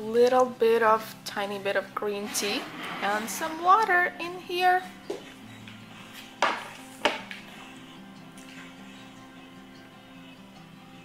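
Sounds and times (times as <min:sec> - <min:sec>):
soft background music: 0:00.0 - 0:11.0
crockery knocking on a table: 0:06.4 - 0:07.4.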